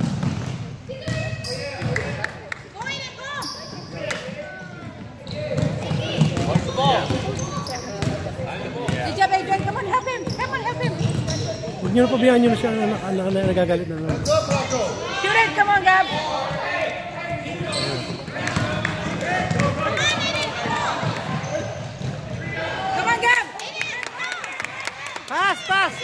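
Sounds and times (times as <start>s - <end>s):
voices echoing in a gym: 0.0s - 26.0s.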